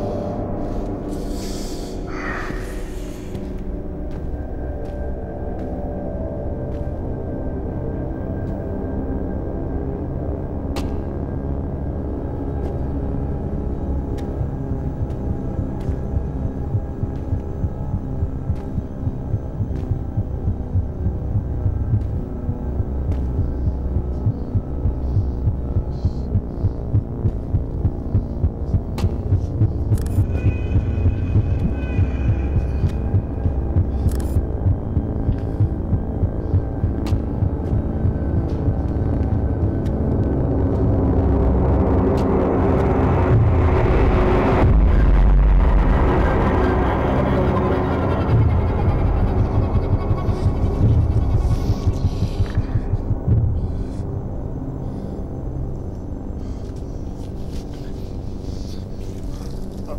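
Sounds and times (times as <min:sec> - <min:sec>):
heartbeat-like pulse: 0:00.0 - 0:58.8
droning hum: 0:00.0 - 0:59.9.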